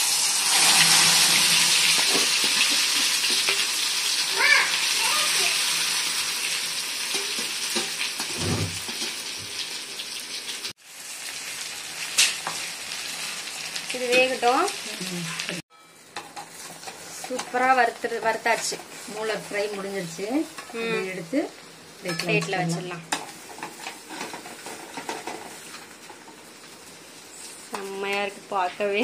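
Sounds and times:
meat sizzling in hot oil: 0.0s - 29.0s.

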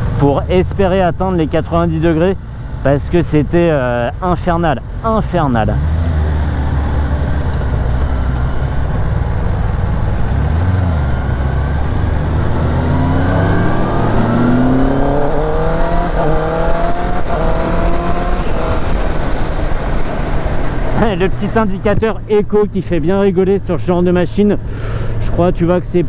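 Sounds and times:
motorcycle engine accelerating: 5.3s - 21.6s.

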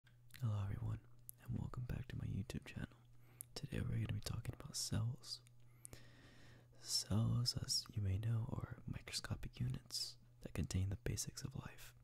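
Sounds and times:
faint low hum: 0.1s - 12.0s
person whispering: 0.3s - 5.4s, 6.8s - 12.0s.

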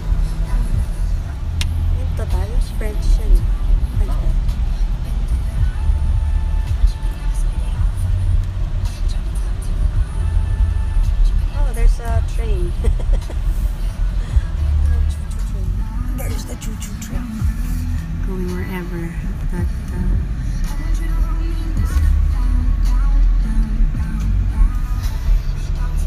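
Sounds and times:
car road and engine rumble: 0.0s - 26.0s
faint music: 0.0s - 26.0s.

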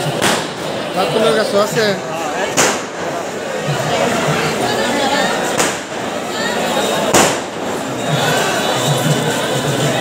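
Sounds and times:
firecracker bang: 0.0s - 0.8s, 2.4s - 3.2s, 5.4s - 6.2s, 7.0s - 7.8s
crowd chatter: 0.0s - 10.0s.

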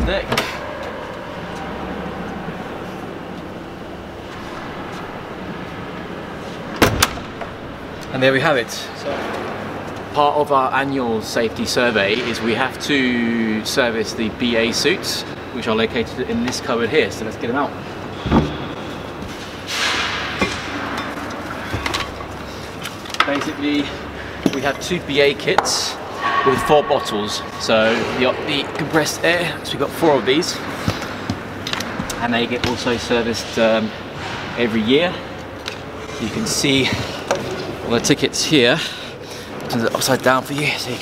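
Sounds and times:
steady background hum: 0.0s - 41.0s
door swung shut and latching: 6.8s - 7.5s.

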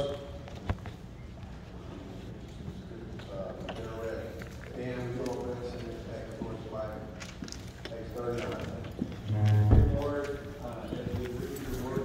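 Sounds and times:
men talking indistinctly: 2.8s - 12.0s
loud low thump: 9.3s - 10.1s.

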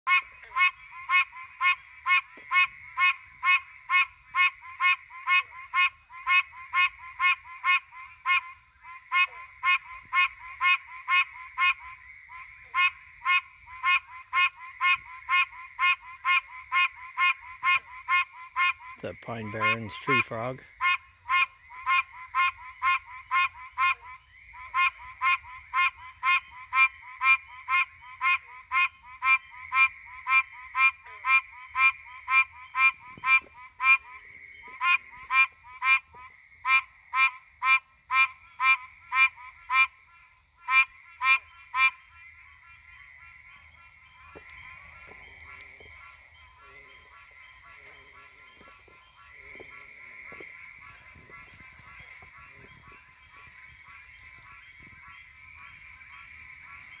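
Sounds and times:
tree frog calling: 0.1s - 57.0s.

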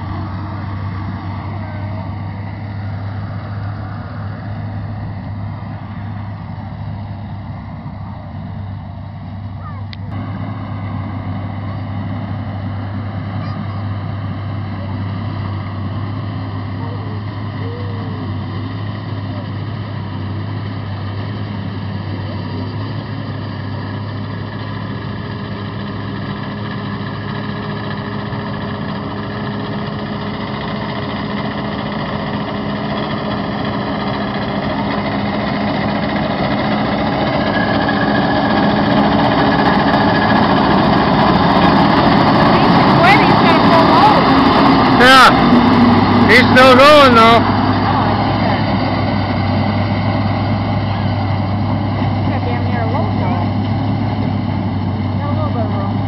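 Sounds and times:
tractor engine drone: 0.0s - 56.0s.

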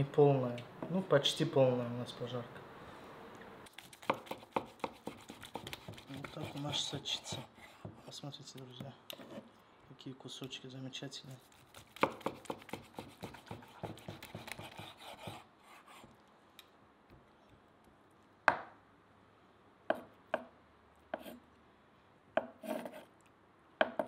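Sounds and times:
knife slicing steak: 11.4s - 15.9s.

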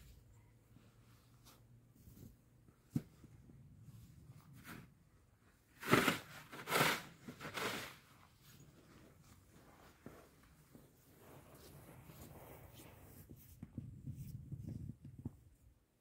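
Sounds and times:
snow tool scraping snow: 5.8s - 8.0s.

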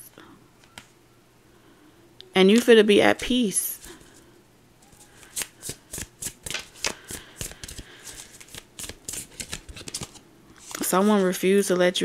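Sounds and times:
cards being shuffled: 4.9s - 11.4s.

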